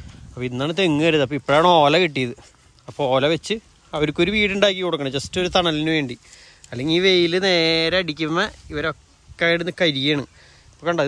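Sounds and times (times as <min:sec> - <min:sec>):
man talking: 0:00.2 - 0:11.0.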